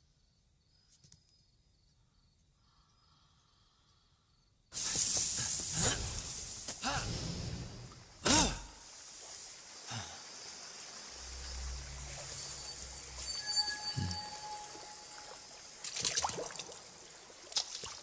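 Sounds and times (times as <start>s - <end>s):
hissing rush: 4.7s - 15.8s.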